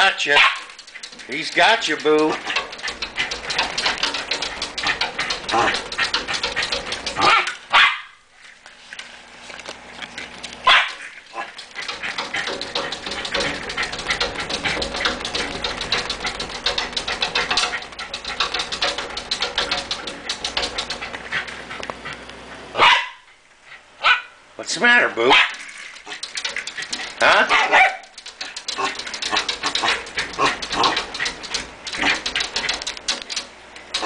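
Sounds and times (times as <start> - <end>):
rapid ticking noise: 0.0 - 7.7, 10.7 - 21.6, 25.5 - 34.0
dog barking: 0.3 - 0.7, 7.2 - 8.2, 10.7 - 11.5, 22.8 - 23.2, 24.0 - 24.4, 25.3 - 25.6, 27.5 - 28.1.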